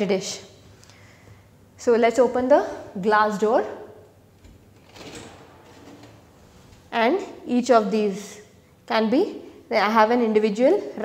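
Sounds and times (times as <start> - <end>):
glass door opening: 4.4 - 6.8.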